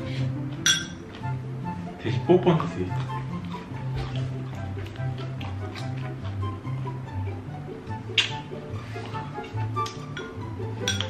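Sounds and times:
background music: 0.0s - 11.0s
metal spoon clinking ceramic bowl: 0.6s - 1.0s, 9.9s - 11.0s.

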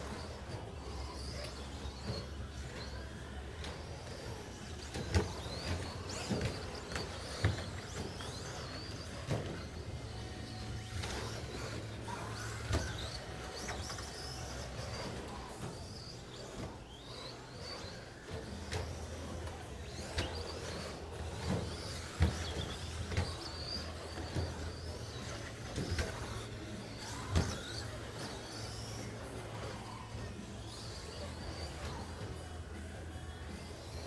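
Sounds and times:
rc truck motors whining: 0.0s - 34.0s
steady low hum: 0.0s - 34.0s.

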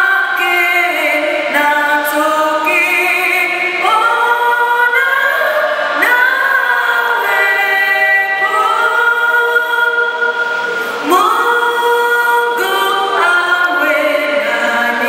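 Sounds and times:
voices singing a hymn: 0.0s - 15.0s.

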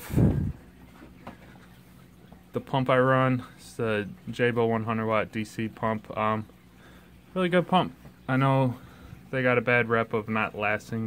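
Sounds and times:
aquarium equipment humming: 0.0s - 11.0s.

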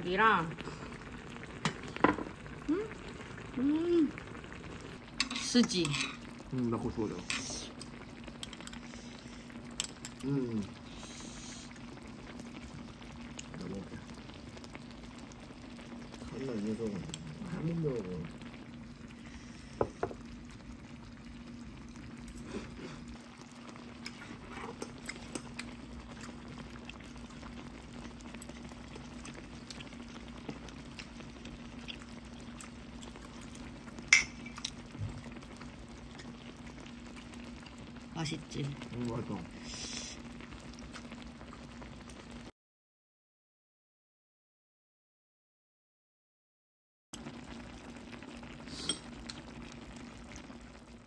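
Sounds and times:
broth simmering in a pot: 0.0s - 42.5s, 47.2s - 51.0s.

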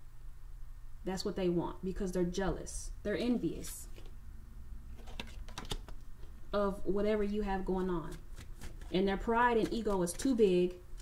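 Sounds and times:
faint steady hum: 0.0s - 11.0s
cards clicking and tapping: 5.0s - 6.3s.

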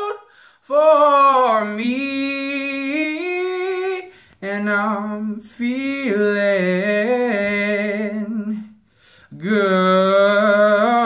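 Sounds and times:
man singing a cappella: 0.0s - 11.0s.

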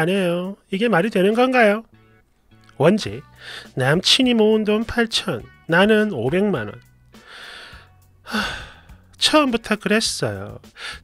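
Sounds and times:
soft breath: 3.3s - 3.8s, 7.2s - 9.1s
man sighing: 7.2s - 9.1s.

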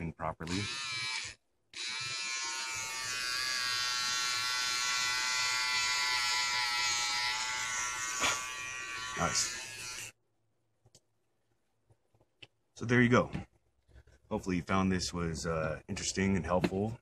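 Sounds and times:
electric trimmer buzzing: 0.5s - 10.2s.

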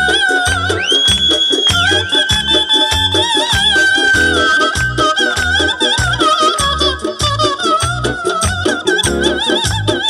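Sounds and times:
pulsing bass accompaniment: 0.0s - 10.0s.

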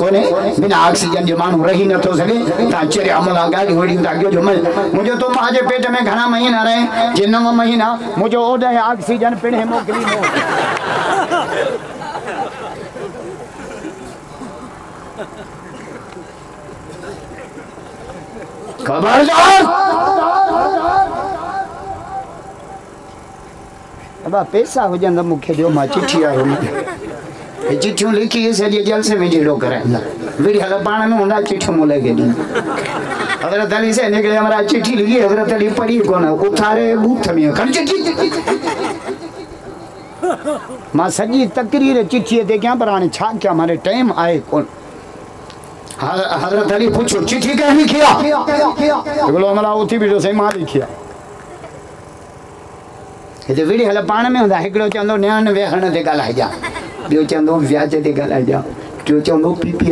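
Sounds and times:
man speaking over loudspeakers: 0.0s - 10.3s, 18.8s - 21.3s, 24.2s - 26.8s, 27.6s - 32.4s, 33.4s - 38.5s, 40.9s - 44.7s, 46.0s - 51.0s, 53.5s - 59.9s
low background noise: 0.0s - 59.9s
crowd murmuring and chattering: 6.4s - 34.3s, 36.0s - 42.3s, 46.7s - 49.9s, 50.6s - 53.3s
short rising-and-falling voiced sounds: 47.9s - 49.8s.

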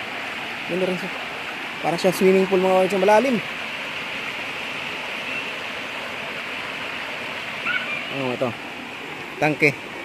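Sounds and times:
river cascade rushing over rock: 0.0s - 10.0s.

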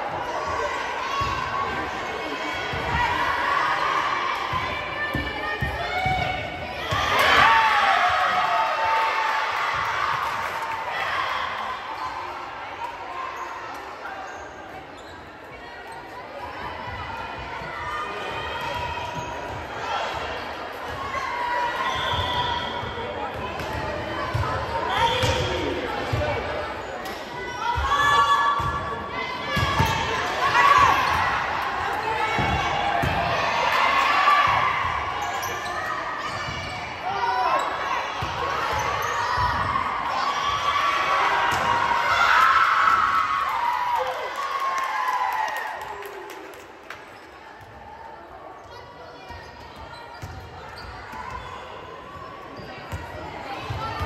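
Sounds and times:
spectators' voices: 0.0s - 54.0s.

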